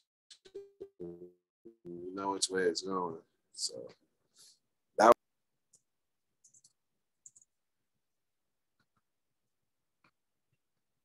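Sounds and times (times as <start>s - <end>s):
computer mouse clicks: 5.7s - 7.5s.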